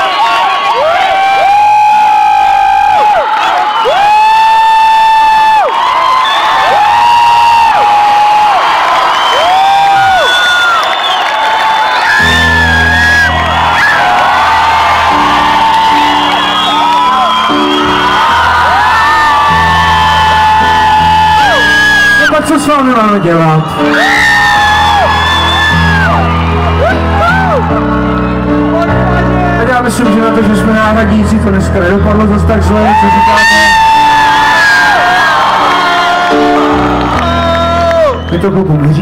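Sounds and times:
crowd cheering: 0:00.0 - 0:39.0
bass and chord notes: 0:12.2 - 0:22.0, 0:24.4 - 0:33.2.

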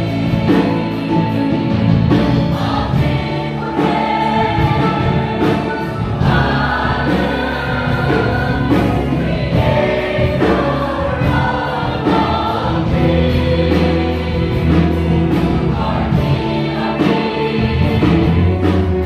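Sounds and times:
choir singing gospel song: 0:00.0 - 0:19.0.

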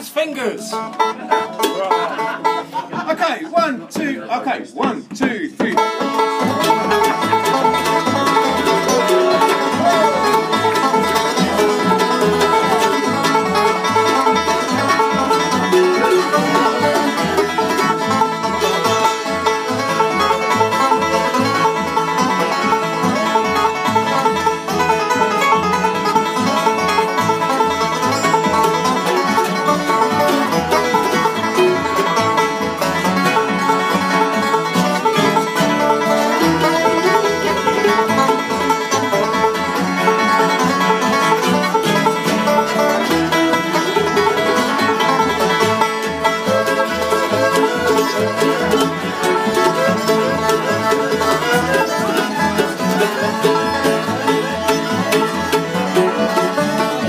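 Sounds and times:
banjo picking quick rolls: 0:00.0 - 0:57.0
upright bass plucking: 0:00.0 - 0:57.0.

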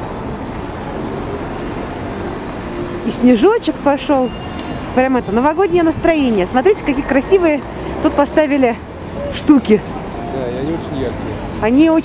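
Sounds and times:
hum of distant traffic: 0:00.0 - 0:12.0.

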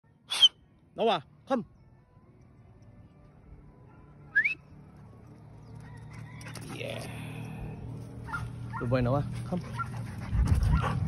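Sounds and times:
person whistling: 0:00.3 - 0:00.6, 0:04.3 - 0:04.6.

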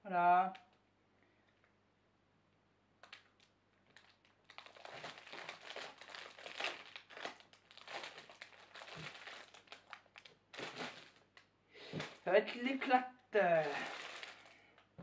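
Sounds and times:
plastic wrapping crinkling: 0:03.0 - 0:12.9, 0:13.5 - 0:14.9.

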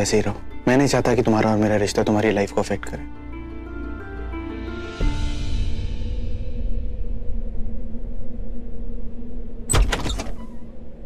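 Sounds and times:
low music drone: 0:00.0 - 0:11.0
door handle and latch clicking: 0:09.7 - 0:10.5.

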